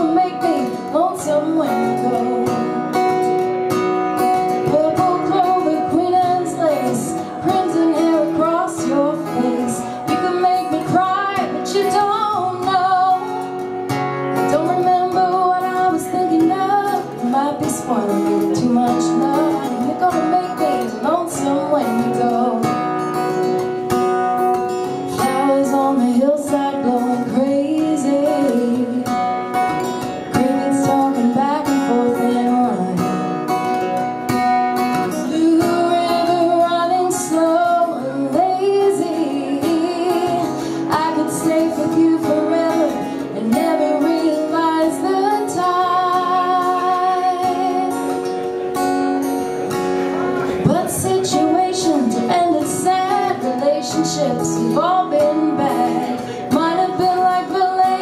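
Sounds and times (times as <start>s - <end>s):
woman singing: 0.0s - 33.9s, 34.8s - 48.9s, 50.5s - 58.0s
acoustic guitar strumming: 0.0s - 58.0s.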